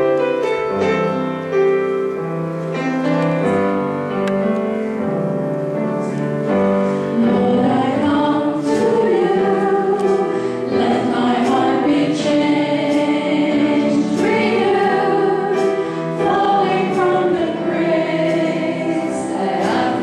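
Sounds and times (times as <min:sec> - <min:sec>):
grand piano accompaniment: 0:00.0 - 0:20.0
voices singing together: 0:07.1 - 0:20.0.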